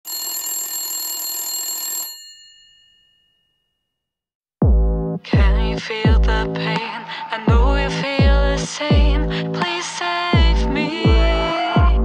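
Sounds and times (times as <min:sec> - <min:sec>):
telephone bell ringing: 0:00.1 - 0:03.7.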